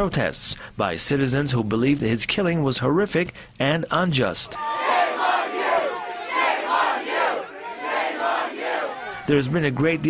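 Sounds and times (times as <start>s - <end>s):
crowd shouting together: 4.5s - 9.3s.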